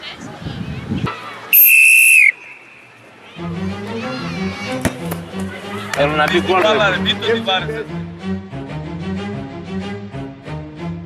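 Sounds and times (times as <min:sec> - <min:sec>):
shrill whistle blast: 0:01.5 - 0:02.8
music: 0:03.3 - 0:11.0.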